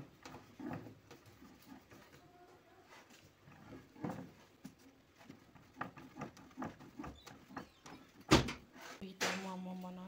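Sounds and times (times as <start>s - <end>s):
rolling pin rolling dough: 0.0s - 9.0s.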